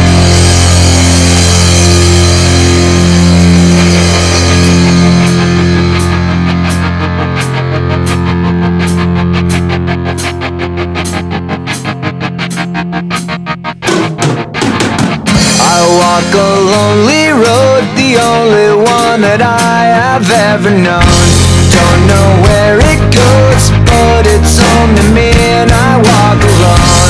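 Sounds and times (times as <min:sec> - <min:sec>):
distorted electric guitar chord: 0:00.0 - 0:27.0
drum kit hit: 0:00.0 - 0:27.0.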